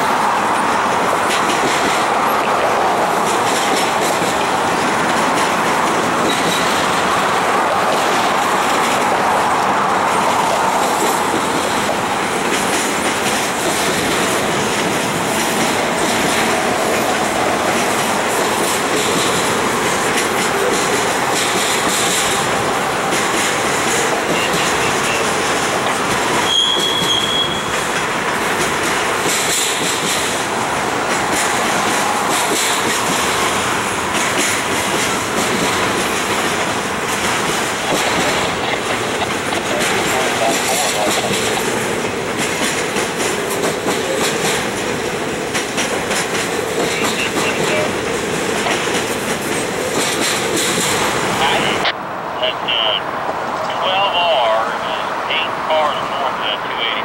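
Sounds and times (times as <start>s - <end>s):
freight train rolling past: 0.0s - 57.0s
train wheels squealing: 26.4s - 27.8s.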